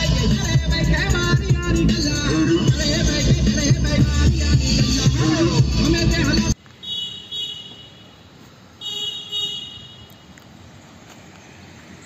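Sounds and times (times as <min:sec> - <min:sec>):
road noise of moving vehicle: 0:00.0 - 0:12.0
vehicle horn tooting: 0:06.8 - 0:10.3.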